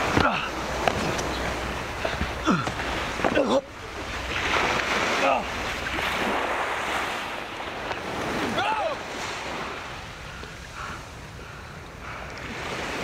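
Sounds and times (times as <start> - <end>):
surf washing on beach: 0.0 - 13.0.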